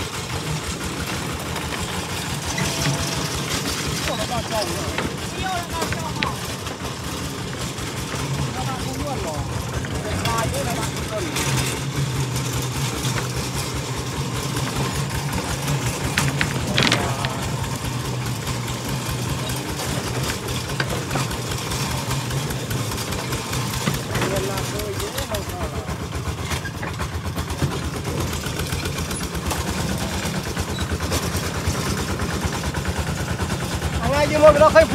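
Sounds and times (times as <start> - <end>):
diesel engine running: 0.0 - 34.9.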